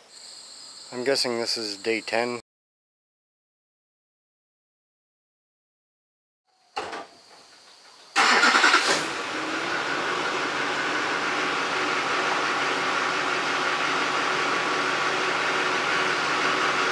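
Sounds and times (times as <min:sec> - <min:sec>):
truck engine cranking and idling: 0:08.2 - 0:16.9.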